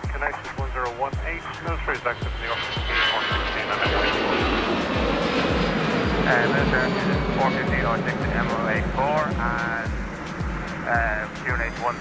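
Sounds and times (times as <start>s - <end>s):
jet engines at climb power: 0.0s - 12.0s
music with thumping beat: 4.3s - 6.3s, 8.8s - 11.8s.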